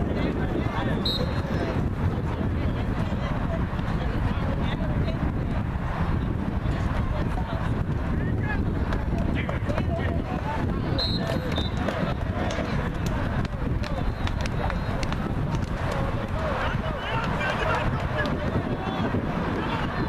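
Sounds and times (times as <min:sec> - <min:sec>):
crowd shouting and calling: 0:00.0 - 0:20.0.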